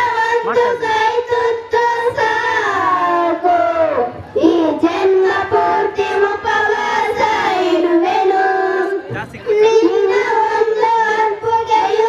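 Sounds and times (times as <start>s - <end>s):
children singing into microphones: 0.0s - 12.0s.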